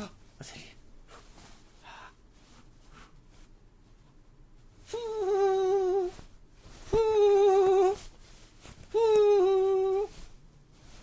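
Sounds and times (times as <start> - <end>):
man humming: 4.9 - 6.2, 7.0 - 8.0, 8.9 - 10.1.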